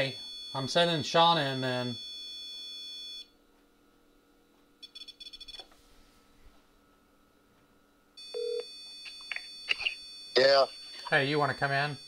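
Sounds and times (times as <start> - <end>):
smartphone beeps: 8.2 - 11.2.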